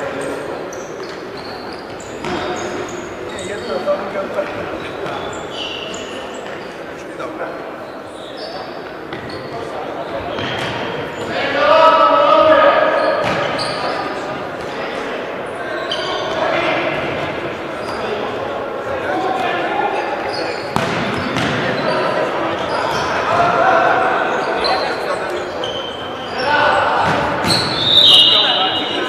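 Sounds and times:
shoes squeaking on court floor: 0.0 - 11.7, 12.5 - 14.8, 15.4 - 29.0
players calling out: 7.8 - 29.0.

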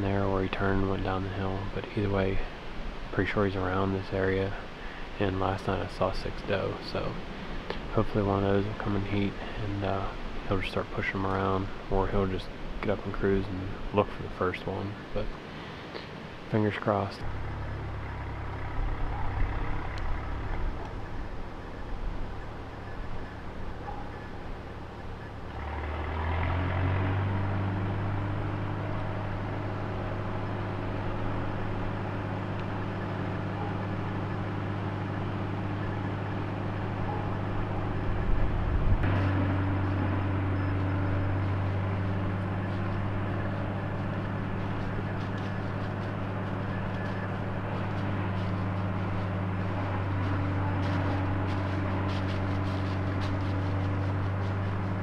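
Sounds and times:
engine humming: 0.0 - 55.0.

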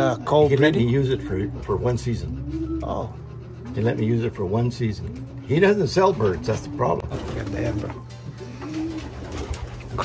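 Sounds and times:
pigeon cooing: 0.0 - 10.0.

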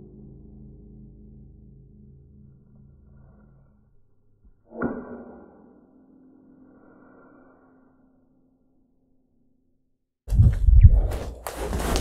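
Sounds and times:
clothing rustle: 10.3 - 12.0.

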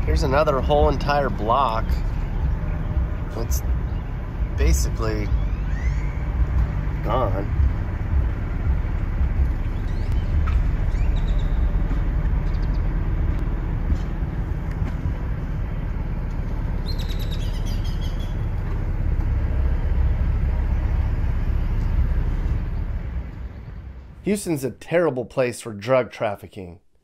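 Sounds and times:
birds chirping: 0.0 - 24.2
car driving slowly: 0.0 - 24.3.

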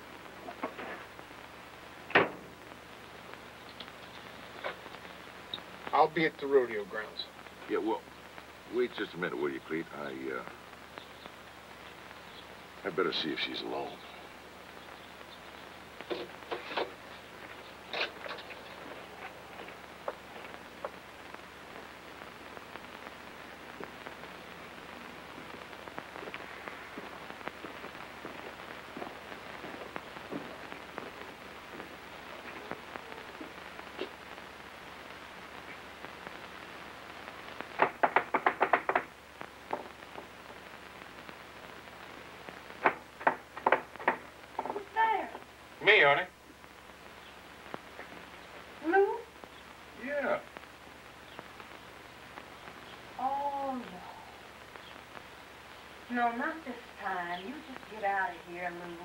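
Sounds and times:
soft outdoor hiss: 0.0 - 59.0
faint clicks: 3.6 - 6.0
rapid knocking on a door: 37.8 - 39.1.

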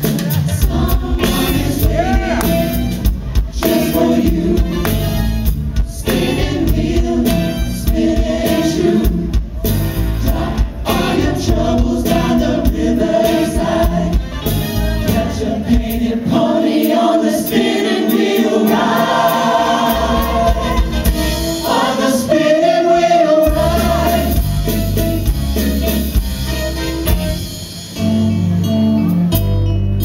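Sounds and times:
band accompaniment: 0.0 - 30.0
choir singing in harmony: 0.1 - 25.4.

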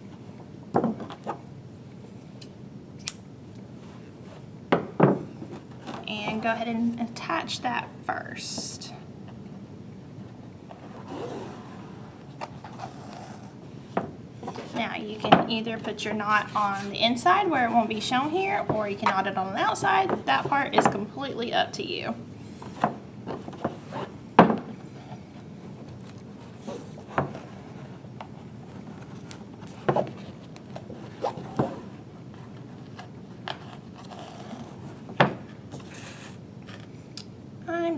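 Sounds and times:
cord scraping through book spine: 10.7 - 13.6, 22.7 - 24.2, 24.8 - 37.0.

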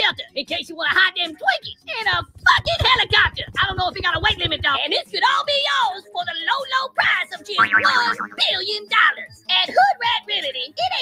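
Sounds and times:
background music: 0.0 - 11.0
person talking rapidly: 7.6 - 8.6.

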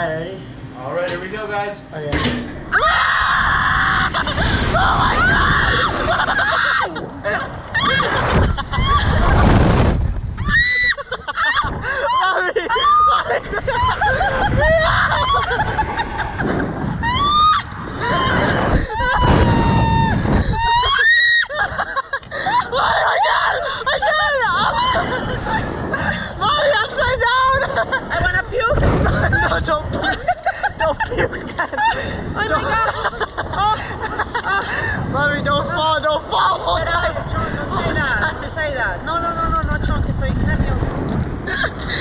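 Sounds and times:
wind rumble on microphone: 2.1 - 42.0
people screaming on a ride: 2.7 - 7.0, 7.7 - 9.5, 10.4 - 16.2, 17.0 - 25.5.

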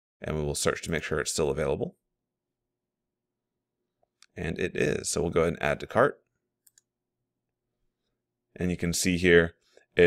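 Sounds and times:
computer mouse click: 6.6 - 6.9.

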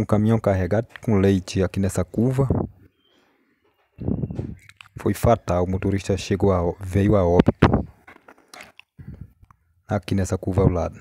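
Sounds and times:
faint mouth and breath sounds: 7.6 - 9.7.

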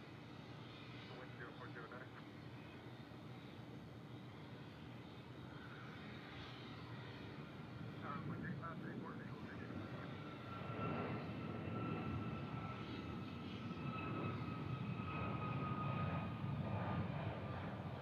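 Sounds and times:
jet engine rumble: 0.0 - 18.0.

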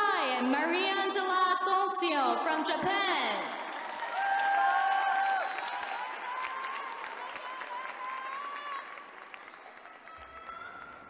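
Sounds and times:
audience applauding: 3.5 - 11.0.

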